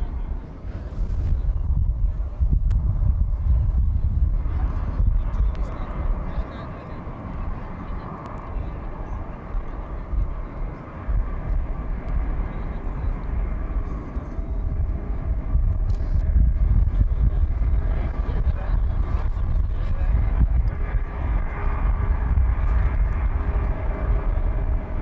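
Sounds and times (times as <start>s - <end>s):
jet engines taxiing: 0.0s - 25.0s.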